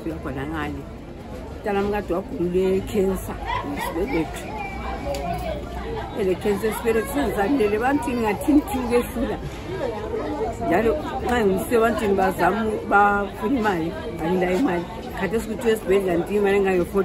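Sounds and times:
woman talking: 0:00.0 - 0:00.9, 0:01.6 - 0:04.5, 0:06.2 - 0:09.5, 0:10.6 - 0:17.0.

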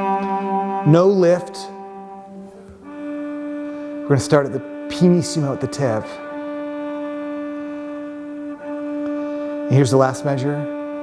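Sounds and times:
cello harmonic note bowed softly: 0:00.0 - 0:11.0.

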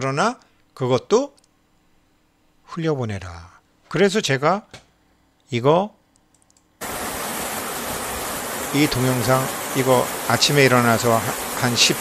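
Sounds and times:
stream water rushing over rock: 0:06.8 - 0:12.0.

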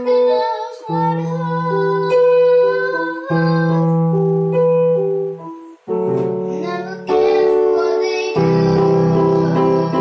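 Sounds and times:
child singing: 0:00.0 - 0:04.6, 0:06.4 - 0:10.0
electronic keyboard chords: 0:00.0 - 0:10.0.

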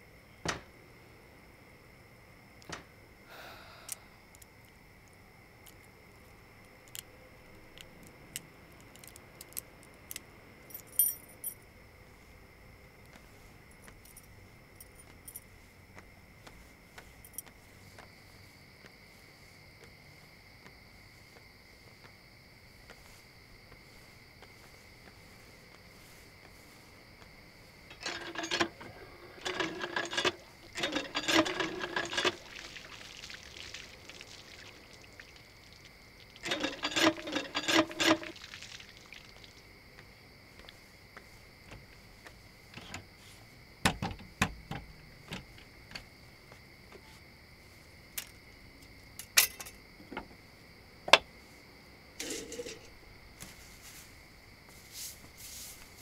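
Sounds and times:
crickets trilling: 0:00.0 - 0:56.0
hand pump knocking and creaking: 0:27.9 - 0:32.4, 0:36.4 - 0:38.4
water splashing: 0:32.2 - 0:36.4, 0:38.2 - 0:39.6
metallic jingling and clicking: 0:36.4 - 0:38.3.

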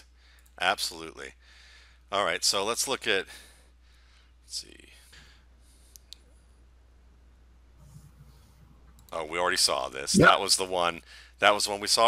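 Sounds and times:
faint low hum: 0:03.1 - 0:11.2.

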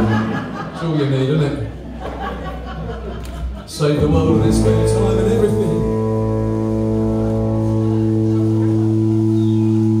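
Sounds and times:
rock band sustained chord: 0:04.0 - 0:10.0.

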